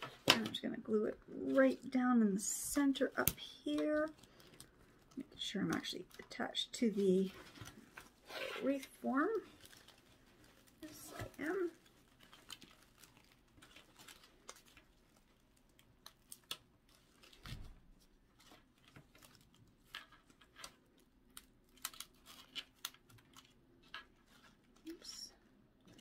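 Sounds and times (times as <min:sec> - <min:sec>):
artificial leaves crinkling: 0:00.0 - 0:26.0.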